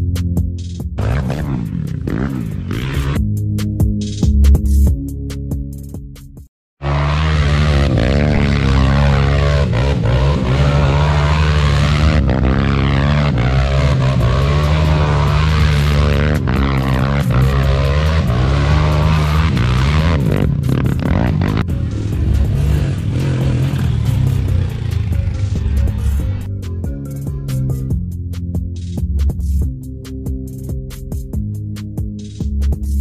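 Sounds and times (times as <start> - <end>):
quad bike engine revving: 1.0 - 3.2, 6.8 - 26.5.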